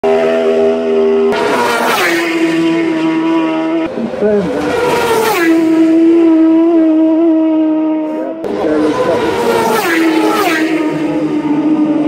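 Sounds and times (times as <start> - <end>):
racing motorcycle passing at full speed: 0.0 - 12.0.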